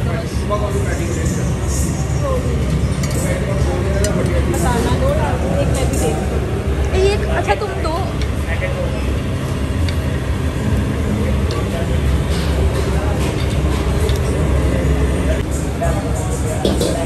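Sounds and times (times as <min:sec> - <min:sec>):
indistinct voices: 0:00.0 - 0:17.0
low rumble of machinery: 0:00.0 - 0:17.0.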